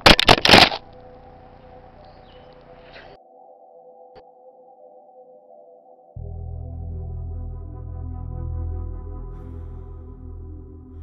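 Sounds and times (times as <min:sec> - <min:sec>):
rough rustling bursts: 0:00.0 - 0:00.9
synthesized drone: 0:00.8 - 0:03.2, 0:06.2 - 0:11.0.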